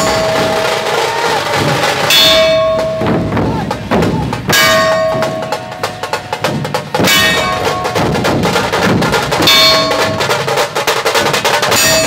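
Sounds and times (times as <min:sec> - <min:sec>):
drums beating: 0:00.0 - 0:12.0.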